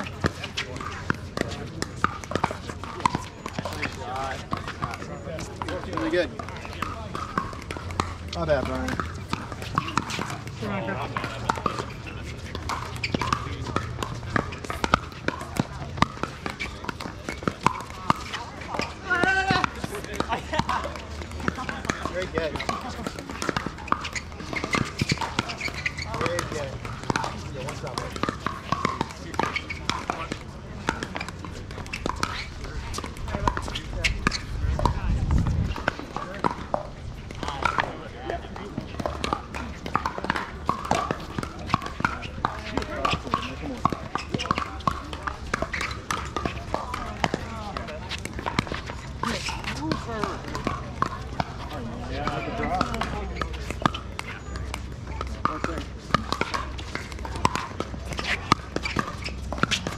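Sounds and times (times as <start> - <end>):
faint voices of players: 0.0 - 59.9
paddles hitting plastic ball: 0.0 - 59.9.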